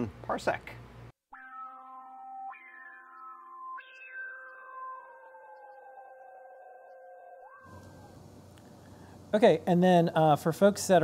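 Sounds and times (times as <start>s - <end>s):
sustained synthesizer tones: 1.4s - 8.2s
faint steady hiss: 7.7s - 11.0s.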